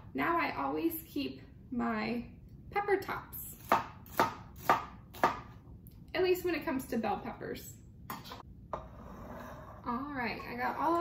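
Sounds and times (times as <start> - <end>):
knife chopping on cutting board: 3.6 - 5.6.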